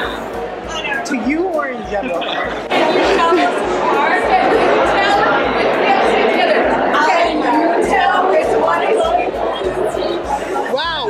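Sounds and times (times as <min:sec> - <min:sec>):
babble of chatter: 0:00.0 - 0:11.0.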